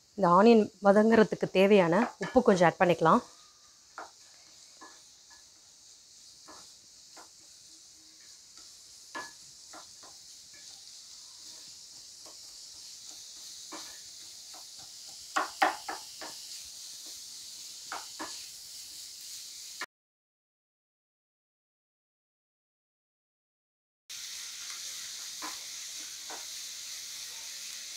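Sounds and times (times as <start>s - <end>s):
onions sizzling in hot oil: 0.0s - 19.9s, 24.1s - 27.9s
spatula scraping and tapping pan: 3.9s - 17.3s, 17.9s - 18.5s, 25.2s - 26.6s.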